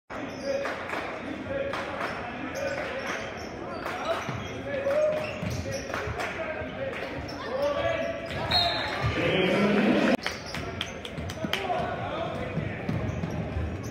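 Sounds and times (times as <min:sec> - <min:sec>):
crowd voices: 0:00.1 - 0:13.9.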